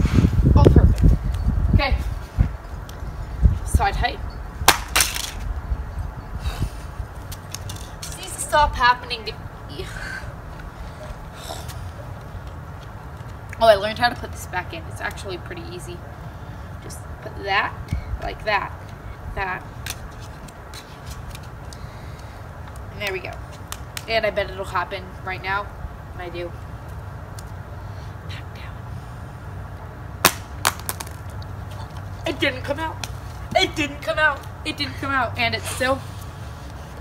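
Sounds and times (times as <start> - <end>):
wind rumble on microphone: 0.0 - 4.7, 5.3 - 11.4
phone hitting concrete: 4.6 - 5.5, 30.2 - 31.3.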